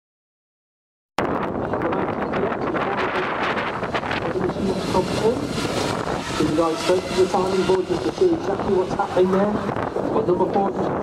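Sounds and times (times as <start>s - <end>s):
wind on microphone: 1.2s - 11.0s
electric motorcycle passing: 2.5s - 11.0s.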